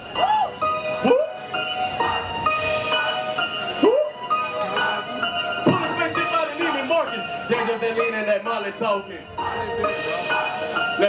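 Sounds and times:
hip-hop music over pa: 0:00.0 - 0:11.0.

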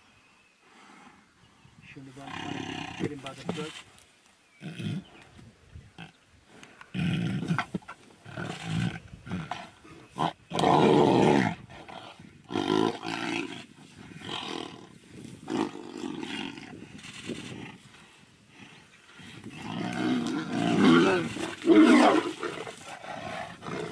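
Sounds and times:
tigers roaring and snarling: 0:02.2 - 0:03.8, 0:06.9 - 0:23.9.

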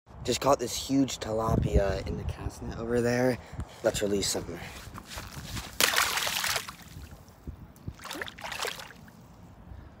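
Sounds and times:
water sloshing: 0:05.6 - 0:07.2, 0:07.9 - 0:09.2
fish splashing into water: 0:05.8 - 0:07.0, 0:08.0 - 0:09.1.

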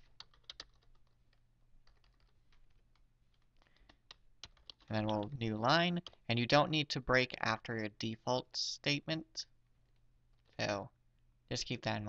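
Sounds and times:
typing on computer keyboard: 0:00.0 - 0:06.3.

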